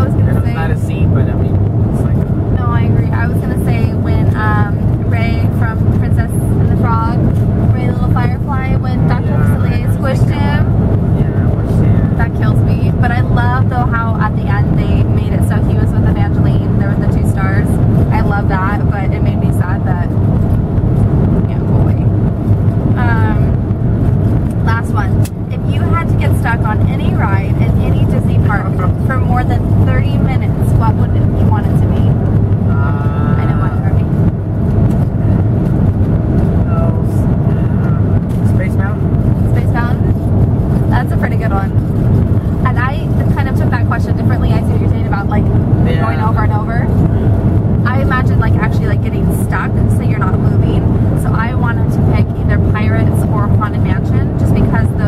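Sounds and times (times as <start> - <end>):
voices talking: 0.0 - 20.1, 22.9 - 23.6, 24.6 - 34.1, 36.6 - 40.2, 40.8 - 41.8, 42.4 - 55.0
car road and engine rumble: 0.0 - 55.0.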